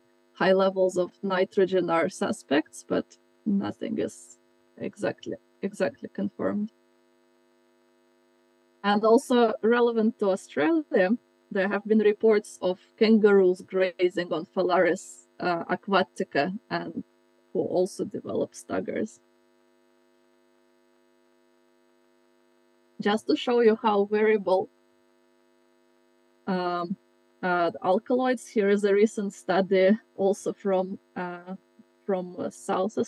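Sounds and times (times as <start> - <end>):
electrical hum: 0.0 - 33.0
person speaking: 0.4 - 6.7, 8.8 - 17.0, 17.6 - 19.1, 23.0 - 24.6, 26.5 - 33.0
woman's voice: 0.4 - 6.7, 8.8 - 17.0, 17.6 - 19.1, 23.0 - 24.7, 26.5 - 33.0.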